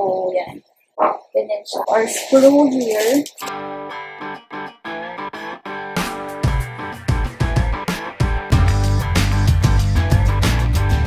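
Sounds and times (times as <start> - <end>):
plucked guitar notes: 3.4 - 11.0
steady low beat: 6.4 - 11.0.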